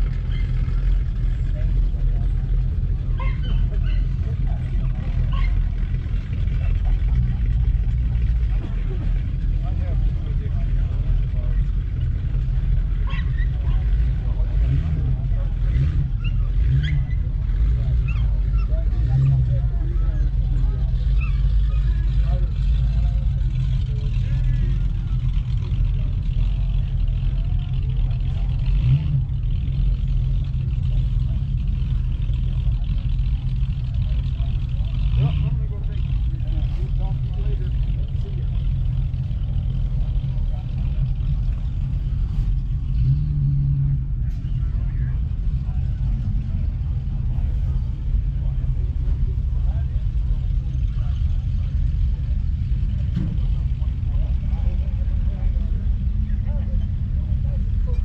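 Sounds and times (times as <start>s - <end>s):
low engine rumble: 0.0s - 58.0s
people chattering: 0.0s - 58.0s.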